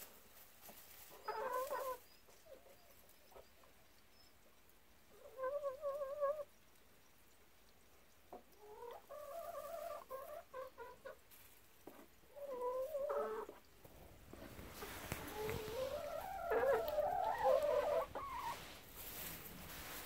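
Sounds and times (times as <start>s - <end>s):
rustling: 0.0s - 2.0s, 11.2s - 12.2s, 13.4s - 20.0s
hen clucking: 0.6s - 6.6s, 8.3s - 20.0s.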